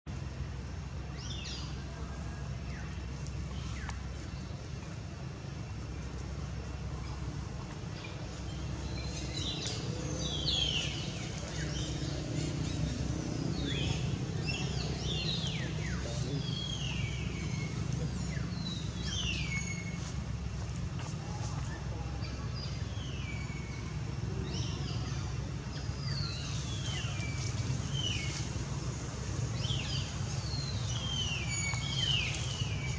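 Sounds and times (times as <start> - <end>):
steady low rumble: 0.1 - 32.9.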